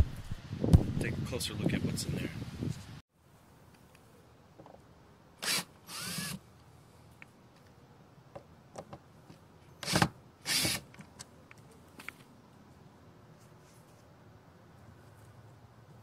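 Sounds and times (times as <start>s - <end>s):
cordless drill bursts: 5.4s - 6.4s, 9.8s - 10.8s.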